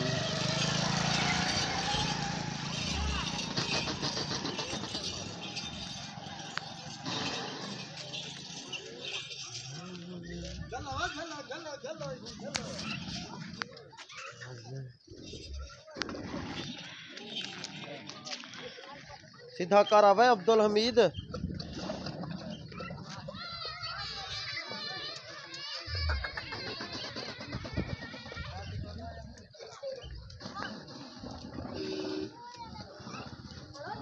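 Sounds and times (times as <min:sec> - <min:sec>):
faint voices: 0:00.0 - 0:34.0.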